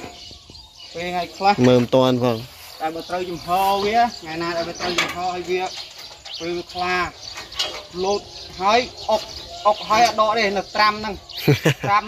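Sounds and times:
man talking: 0.9s - 5.8s, 7.9s - 12.0s.

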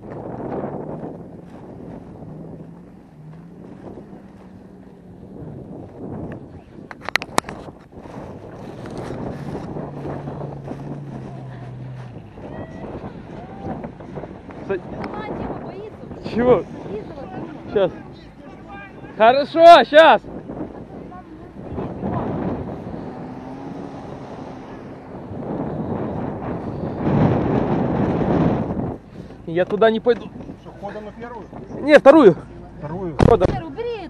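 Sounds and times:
engine humming: 0.0s - 34.0s
wind noise on microphone: 0.0s - 34.0s.

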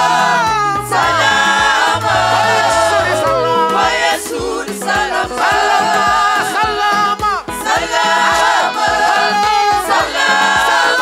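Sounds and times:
steady low beat: 0.0s - 7.6s
choir singing in harmony: 0.0s - 11.0s.

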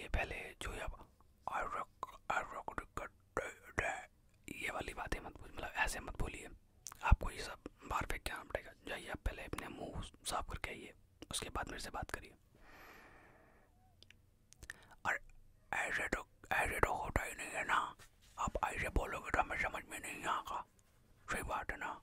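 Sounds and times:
man whispering: 0.0s - 12.4s, 14.6s - 22.0s.

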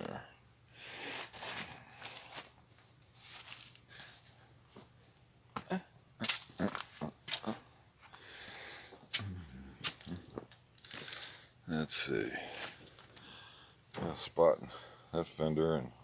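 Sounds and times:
high-pitched insect drone: 0.0s - 16.0s
footsteps: 1.3s - 5.0s.

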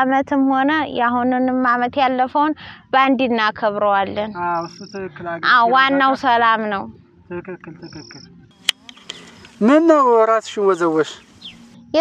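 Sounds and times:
woman talking: 0.0s - 4.4s, 5.1s - 6.9s.

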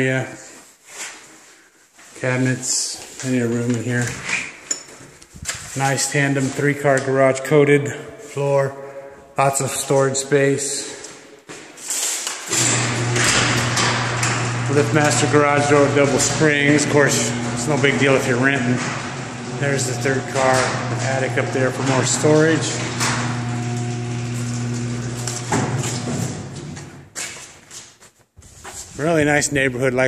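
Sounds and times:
garage door opener humming: 12.5s - 27.1s.

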